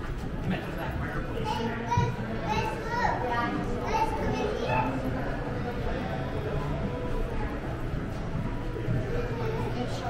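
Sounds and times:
background chatter: 0.0 - 10.0
children calling and talking: 1.2 - 10.0.

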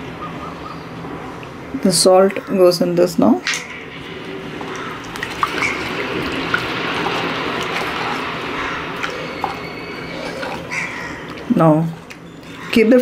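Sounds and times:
spatula stirring liquid in pot: 5.1 - 11.5.

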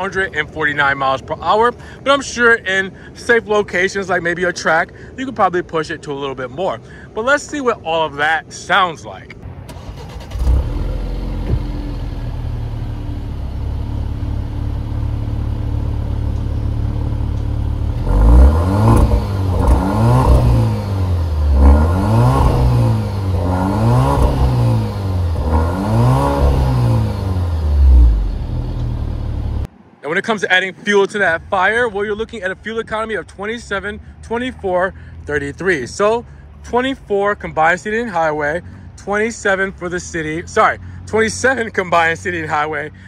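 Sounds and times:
car engine idling and revving: 9.4 - 29.8.

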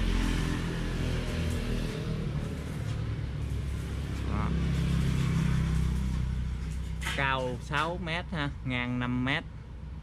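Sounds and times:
vehicle engine passing: 0.0 - 8.7.

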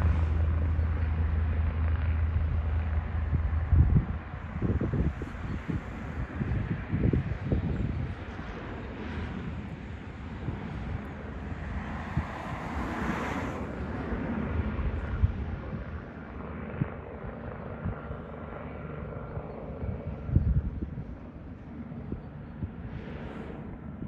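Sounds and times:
helicopter engine and rotor: 0.0 - 24.0
wind buffeting microphone: 0.0 - 24.0.

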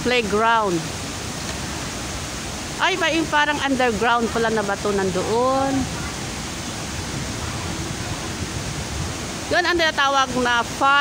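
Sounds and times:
water feature rushing: 0.0 - 11.0.

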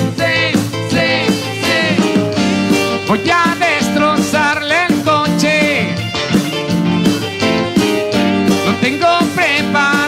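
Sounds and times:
band lead melody: 0.0 - 10.0
steady bass line: 0.0 - 10.0.

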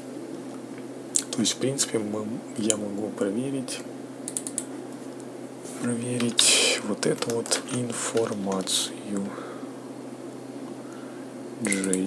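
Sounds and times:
low steady hum: 0.0 - 12.0
sharp computer clicks: 4.3 - 4.7, 6.2 - 9.3, 11.6 - 12.0.

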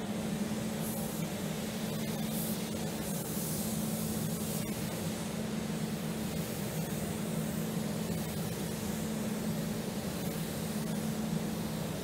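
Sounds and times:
spray gun hissing: 0.8 - 5.2, 5.8 - 10.8.

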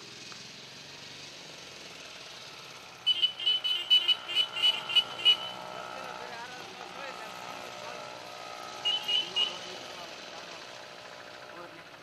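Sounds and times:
engine hum: 0.0 - 12.0.

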